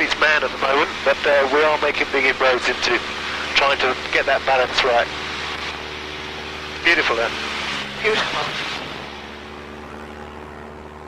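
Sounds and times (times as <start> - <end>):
aircraft engine drone: 0.0 - 11.0.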